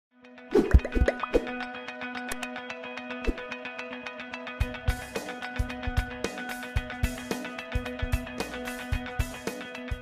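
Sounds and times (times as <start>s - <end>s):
bubbly upward-gliding plops: 0.5s - 1.6s.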